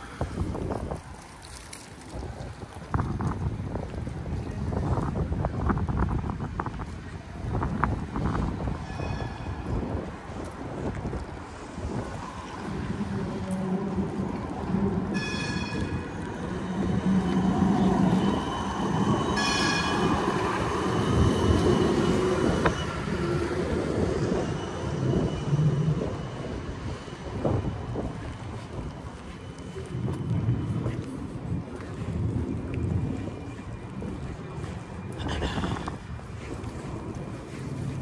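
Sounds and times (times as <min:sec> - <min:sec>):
tram running on rails: 0:00.0 - 0:38.0.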